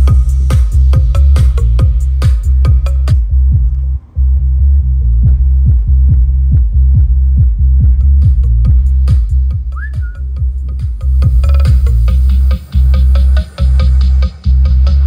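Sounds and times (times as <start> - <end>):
electronic dance music: 0.0 - 4.2, 5.3 - 15.0
rising whistle: 9.7 - 10.3.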